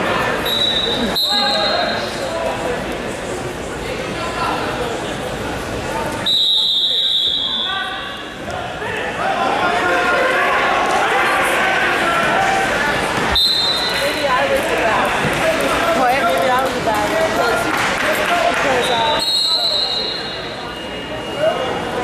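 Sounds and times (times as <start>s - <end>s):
referee's whistle: 0.4s - 2.1s, 6.2s - 8.2s, 13.4s - 14.0s, 18.8s - 21.6s
spectators shouting and cheering: 7.4s - 22.0s.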